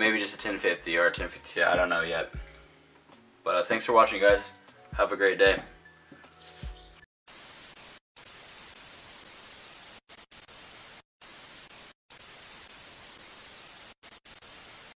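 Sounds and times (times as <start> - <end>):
television static hiss: 7.3 - 14.9.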